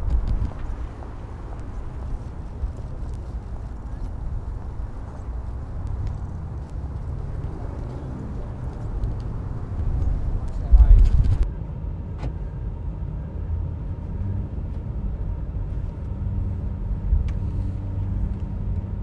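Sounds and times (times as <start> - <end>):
wind buffeting microphone: 0.0 - 11.5
vehicle engine and road rumble: 0.0 - 19.0.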